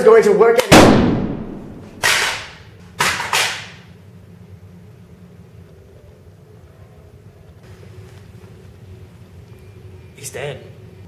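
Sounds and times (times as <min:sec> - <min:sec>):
pistol shots: 0:00.6 - 0:03.8.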